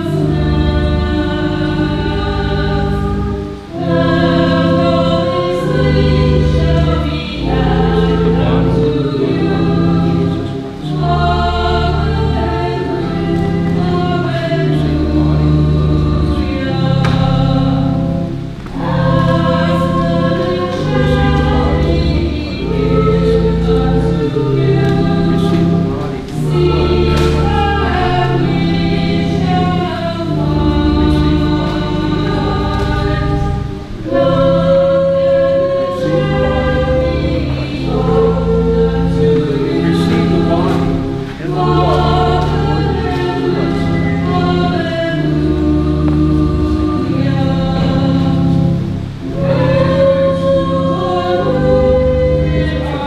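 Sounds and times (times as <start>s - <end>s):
choir singing a hymn: 0.0s - 53.0s
sustained low chords: 0.0s - 53.0s.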